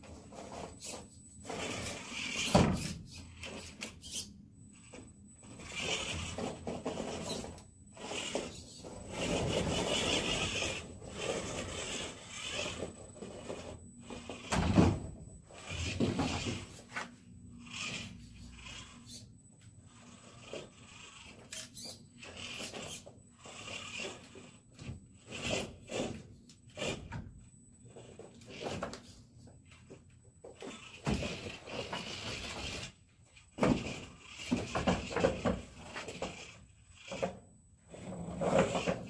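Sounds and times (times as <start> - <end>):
electric toy car motor whirring: 0.0 - 27.1, 27.9 - 39.0
tires scraping and knocking on wood: 5.6 - 17.2.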